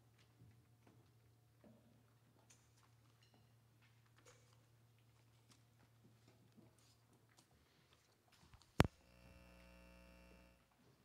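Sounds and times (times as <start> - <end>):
buzzy electrical hum: 8.8 - 10.7.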